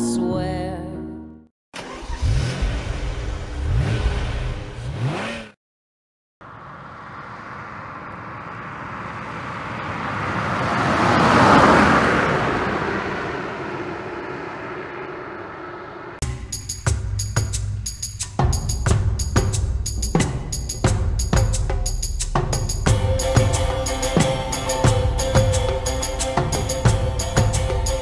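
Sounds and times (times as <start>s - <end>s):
car engine revving: 1.8s - 5.6s, 6.4s - 17.1s
car driving past: 6.4s - 16.2s.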